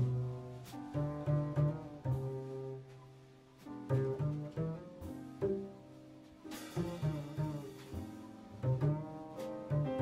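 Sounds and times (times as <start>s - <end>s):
light jazz accompaniment: 0.0s - 10.0s
plucked double bass walking line: 0.0s - 10.0s.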